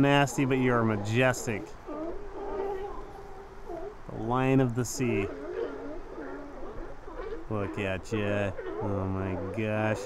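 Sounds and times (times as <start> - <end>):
sea lion calling: 0.0 - 10.0.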